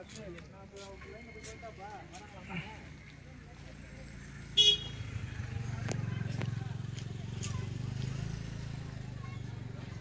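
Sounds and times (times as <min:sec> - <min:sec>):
vehicle engine running: 0:02.5 - 0:10.0
vehicle horn toot: 0:04.6 - 0:05.1.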